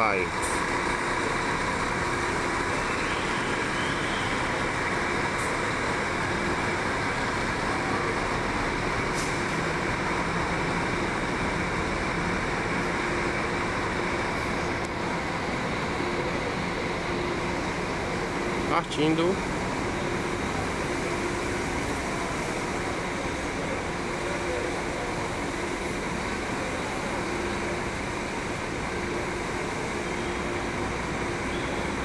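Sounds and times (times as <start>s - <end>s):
bus engine pulling away: 0.0s - 32.0s
traffic: 0.0s - 32.0s.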